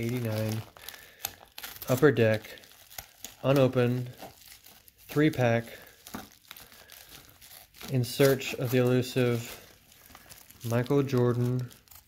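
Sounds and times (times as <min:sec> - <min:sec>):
plastic crinkling: 0:00.0 - 0:12.0
scissors cutting plastic: 0:00.0 - 0:12.0.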